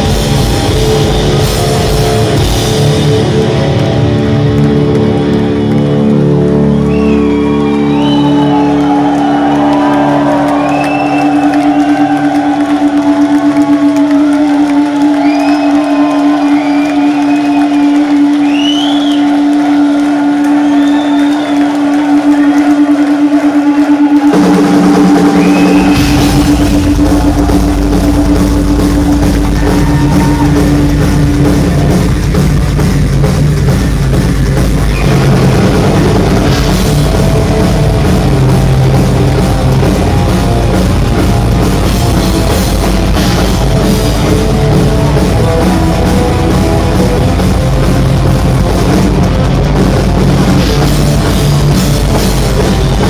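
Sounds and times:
crowd cheering and whooping: 0.0 - 32.8, 34.8 - 49.3
drums and bass: 0.0 - 53.0
heavy metal band playing: 0.0 - 53.0.

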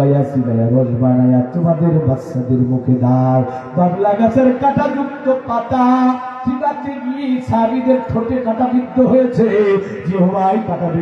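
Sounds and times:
man preaching in sing-song chant: 0.0 - 11.0.

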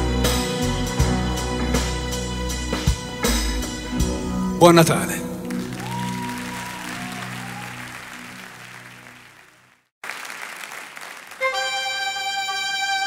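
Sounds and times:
held instrumental chord: 0.0 - 5.8
song chord: 0.0 - 6.2
audience applause: 5.0 - 12.0.

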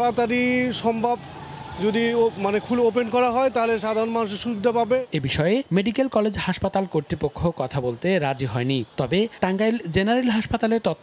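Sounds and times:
man speaking: 0.0 - 1.2, 1.8 - 11.0
faint traffic hum: 0.0 - 11.0.

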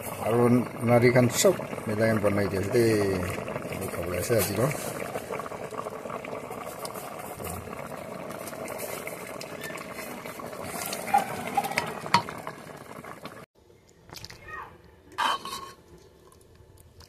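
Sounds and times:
stew bubbling in a pot: 0.0 - 14.3.

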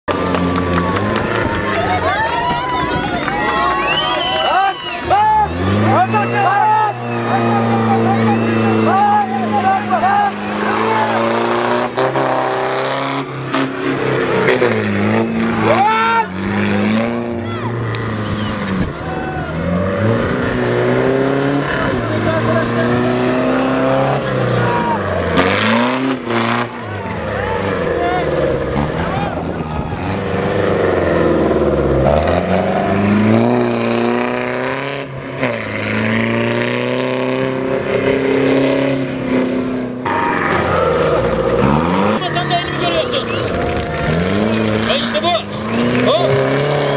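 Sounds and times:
crowd voices and shouts: 0.1 - 36.3, 39.9 - 46.9
off-road vehicle engine revving: 0.1 - 46.9.

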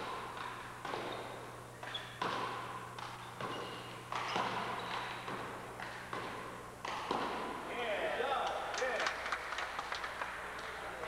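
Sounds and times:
handball slapping and bouncing: 0.0 - 7.7.

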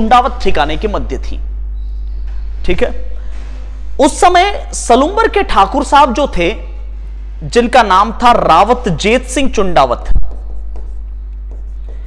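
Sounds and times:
chalk scratching on chalkboard: 10.2 - 12.0.

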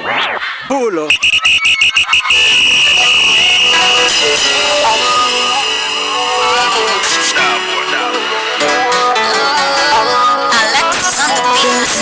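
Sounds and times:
shrill electronic alarm tone: 1.1 - 7.5
backing music: 1.2 - 12.0.

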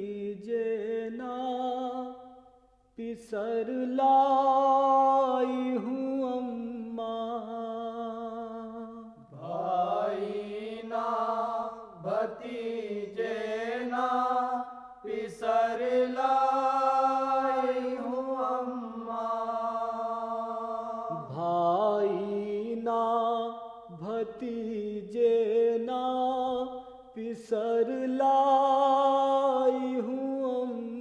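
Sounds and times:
man singing wordless lament: 0.0 - 2.2, 3.0 - 10.0, 21.1 - 31.0.

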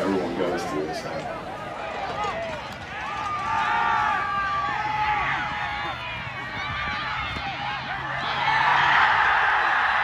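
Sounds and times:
spectators yelling and cheering: 0.3 - 10.0.

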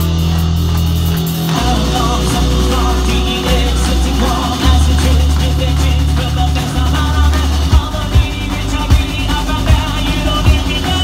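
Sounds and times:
live rock band playing: 0.0 - 11.0
kick drum beat: 7.7 - 10.9.

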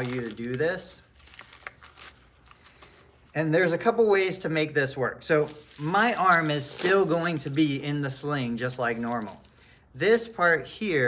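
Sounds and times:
strap rustling: 0.0 - 3.4, 5.3 - 7.9.

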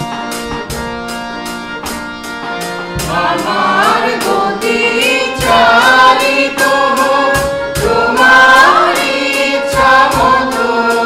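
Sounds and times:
acoustic guitar: 0.0 - 11.0
drum kit beat: 0.0 - 11.0
harmonium: 0.0 - 11.0
mixed choir singing: 2.5 - 11.0.

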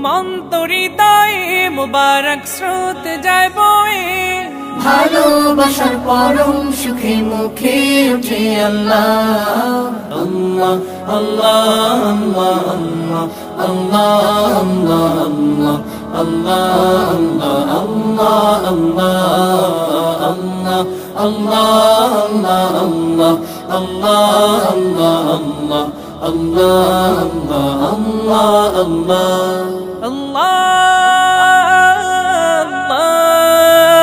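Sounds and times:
devotional chanting: 0.0 - 34.0.

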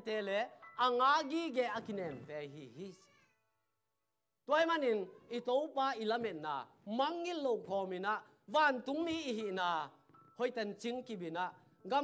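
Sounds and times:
man preaching: 0.0 - 3.2, 4.4 - 12.0.

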